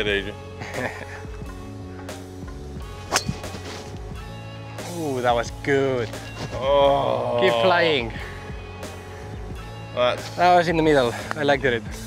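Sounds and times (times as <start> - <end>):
background music: 0.0 - 12.0
golf club striking ball: 3.0 - 4.0.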